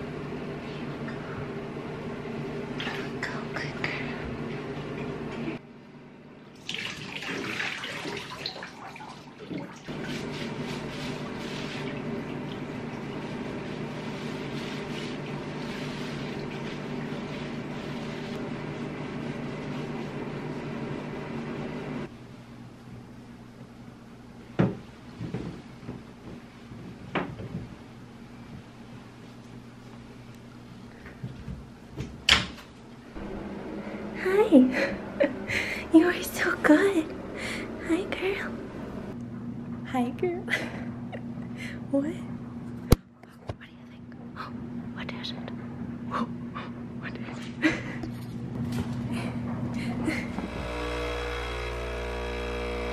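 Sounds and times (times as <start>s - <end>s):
water running into bathtub: 2.6s - 3.3s, 6.5s - 18.4s
woman whispering softly: 2.9s - 4.2s, 43.3s - 46.3s.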